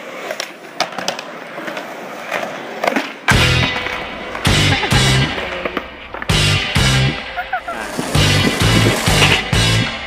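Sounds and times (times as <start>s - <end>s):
skateboard tail popping crack: 0.0s - 6.3s
skateboard wheels clicking: 0.0s - 6.4s, 7.7s - 9.4s
skateboard wheels rolling on concrete: 0.0s - 10.0s.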